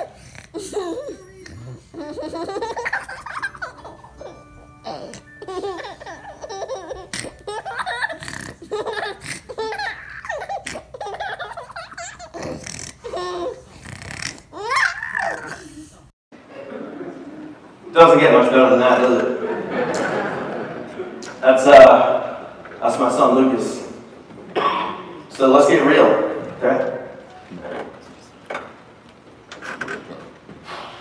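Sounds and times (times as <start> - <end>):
baby laughing and giggling: 0.0 - 15.8.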